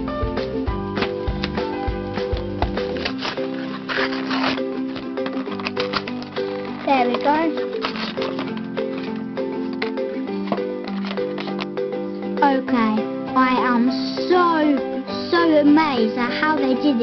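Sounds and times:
background music with held chords: 0.0s - 17.0s.

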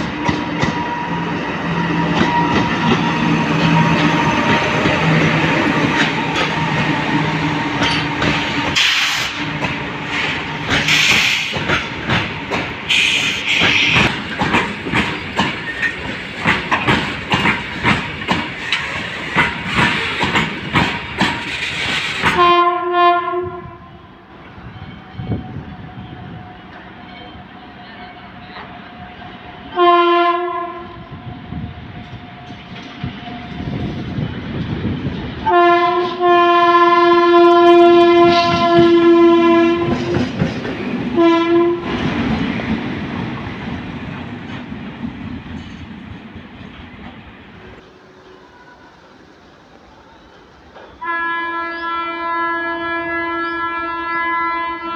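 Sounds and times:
locomotive rushing rumble: 0.0s - 22.5s, 31.0s - 51.1s
train wheels clacking over rail joints: 0.0s - 22.5s, 38.1s - 47.2s
locomotive horn blasts: 22.3s - 23.9s, 29.7s - 31.1s, 35.4s - 40.1s, 41.2s - 41.9s, 51.0s - 54.9s.

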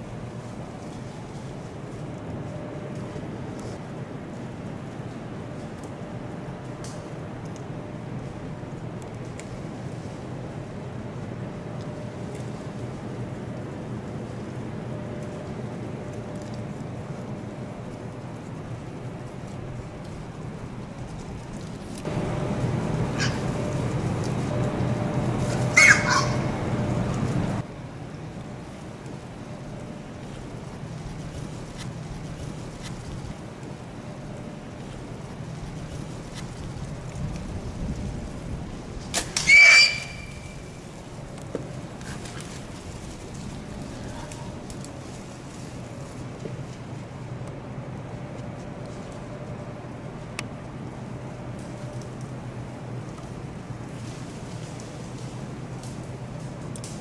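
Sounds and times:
steady low hum: 0.0s - 57.0s
hogs squealing: 23.2s - 23.5s, 25.7s - 26.6s, 39.4s - 40.7s.

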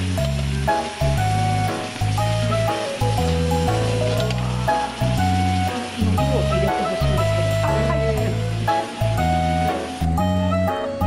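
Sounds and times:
background music with bass line: 0.0s - 11.0s
broth sizzling and boiling: 0.0s - 11.0s.

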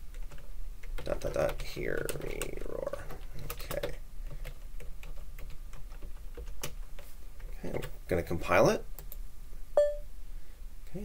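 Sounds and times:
short electronic beep: 9.8s - 10.1s.

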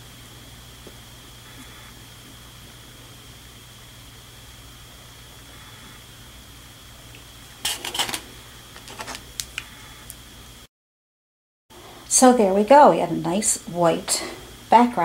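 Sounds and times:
faint high whine: 0.0s - 10.7s.

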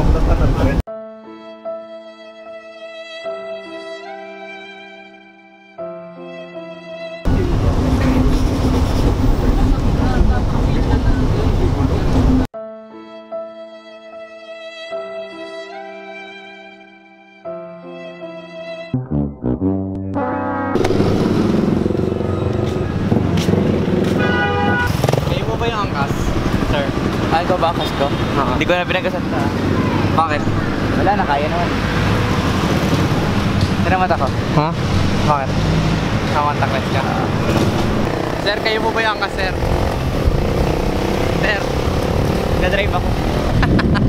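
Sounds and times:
street traffic: 0.0s - 0.9s, 7.2s - 12.5s, 20.6s - 44.0s
background music: 0.9s - 8.2s, 12.6s - 22.6s
motorcycle engine and road noise: 7.3s - 12.5s, 20.7s - 44.0s
vehicle horn: 20.2s - 25.2s, 27.7s - 28.8s.

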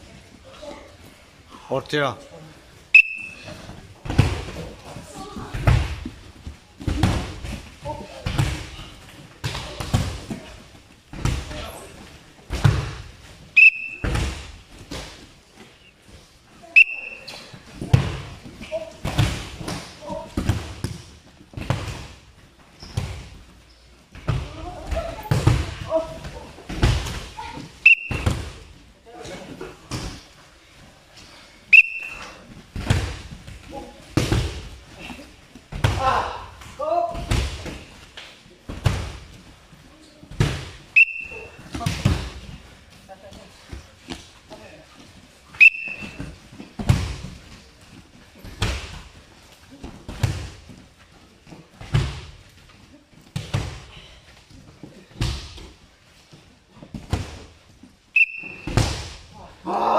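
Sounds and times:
sports whistle blast: 2.9s - 3.5s, 13.6s - 14.1s, 16.8s - 17.4s, 27.8s - 28.3s, 31.7s - 32.4s, 41.0s - 41.6s, 45.6s - 46.2s, 58.2s - 58.8s.

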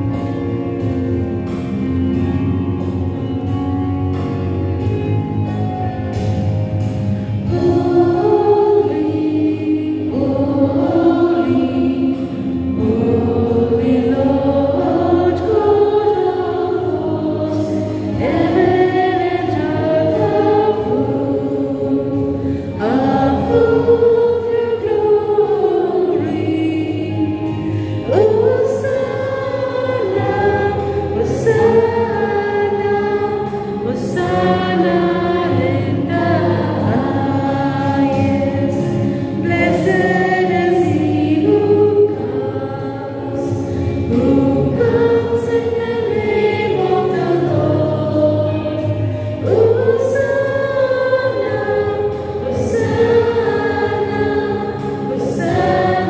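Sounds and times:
girls singing into microphones: 6.8s - 56.0s.

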